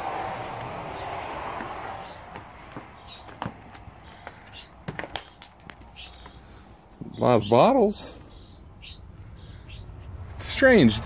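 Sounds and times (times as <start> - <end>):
footsteps crunching on debris: 0.4 - 6.4.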